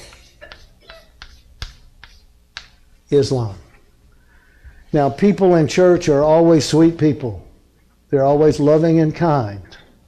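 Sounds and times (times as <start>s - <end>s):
chalk clicking on chalkboard: 0.0s - 2.9s.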